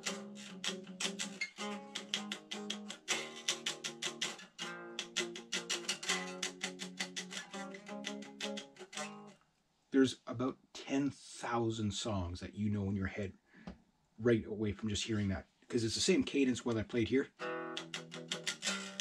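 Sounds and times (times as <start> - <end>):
electric guitar rock chords: 17.4 - 19.0.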